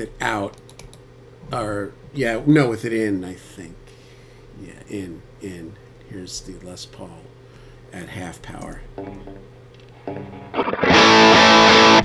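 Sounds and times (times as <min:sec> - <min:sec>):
electric guitar chords: 0:08.9 - 0:12.0.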